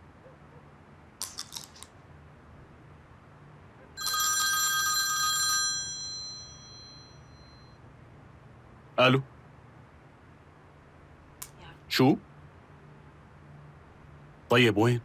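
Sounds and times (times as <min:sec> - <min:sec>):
bell-like phone ring: 0:04.0 - 0:07.8.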